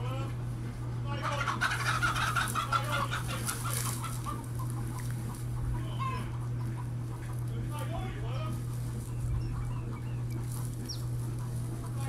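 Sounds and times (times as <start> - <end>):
chickens squawking and clucking: 0.0 - 12.0
steady low hum: 0.0 - 12.0.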